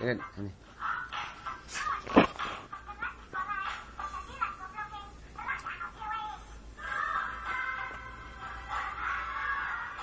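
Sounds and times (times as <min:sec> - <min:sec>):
music: 0:00.6 - 0:05.1, 0:06.1 - 0:10.0
young child's high-pitched voice: 0:01.7 - 0:06.5.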